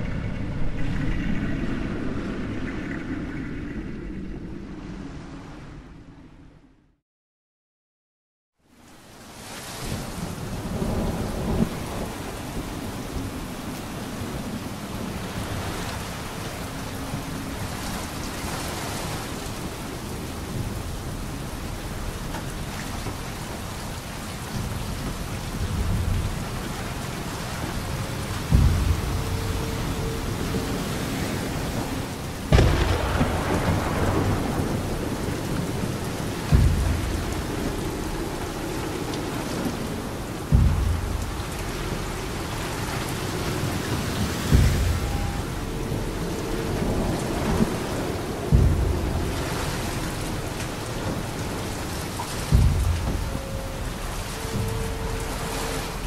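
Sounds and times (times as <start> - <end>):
rain: 0.0 - 6.3, 8.6 - 56.0
deep drum strikes: 28.2 - 31.9, 32.5 - 56.0.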